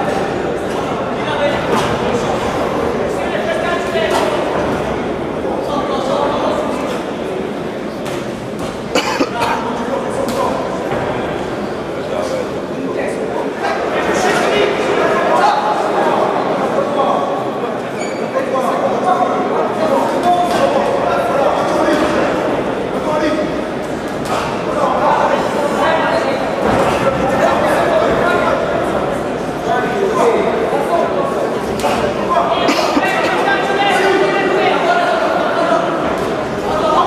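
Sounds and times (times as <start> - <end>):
spectators shouting in echoing hall: 18.8 - 37.0.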